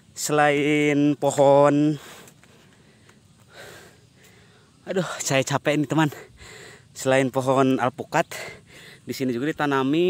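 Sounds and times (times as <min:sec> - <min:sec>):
person breathing heavily: 0:01.9 - 0:05.2, 0:06.2 - 0:07.0, 0:08.3 - 0:09.1.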